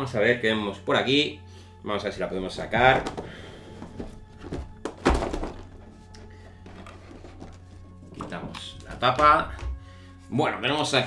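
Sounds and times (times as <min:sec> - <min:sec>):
soft background music: 0:00.0 - 0:11.0
plastic tray knocks: 0:02.8 - 0:05.8
plastic tray thunk: 0:02.8 - 0:05.8.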